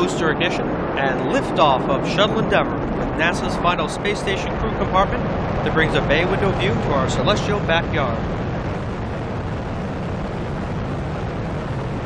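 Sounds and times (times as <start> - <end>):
rocket engines rumbling: 0.0 - 12.0.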